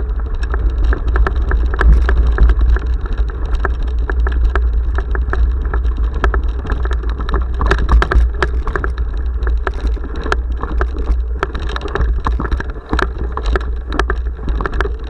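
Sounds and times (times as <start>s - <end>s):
clicks and knocks from camera shaking: 0.0s - 15.0s
mountain bike rattling on dirt trail: 0.0s - 15.0s.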